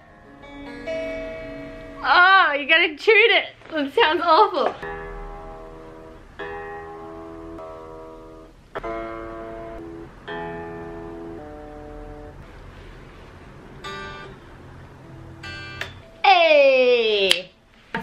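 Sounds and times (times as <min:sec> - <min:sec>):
electric guitar chords: 0:00.0 - 0:02.2, 0:04.8 - 0:16.2
electric guitar strum: 0:04.8 - 0:12.4.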